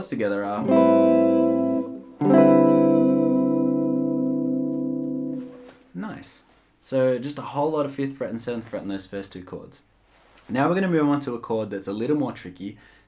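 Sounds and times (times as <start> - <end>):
clean electric guitar chords: 0.6 - 5.8.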